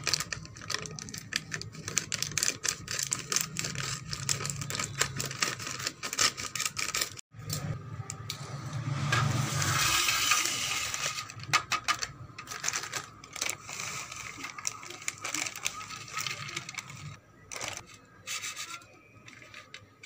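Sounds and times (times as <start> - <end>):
plastic snack packet crinkling: 0.0 - 7.2, 11.0 - 18.0.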